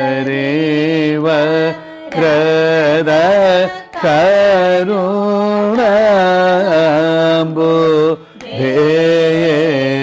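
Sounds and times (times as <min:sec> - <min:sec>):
man singing held ornamented notes: 0:00.0 - 0:10.0.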